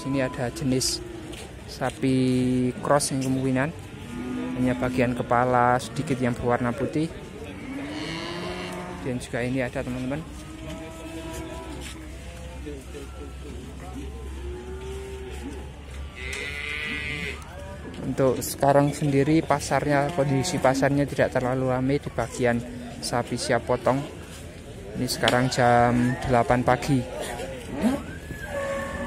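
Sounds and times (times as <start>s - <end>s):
chatter of many people: 0.0s - 29.0s
low market rumble: 0.0s - 29.0s
cattle mooing: 4.0s - 6.4s, 7.6s - 9.2s, 10.4s - 12.5s, 14.4s - 17.5s, 20.0s - 20.9s, 27.7s - 29.0s.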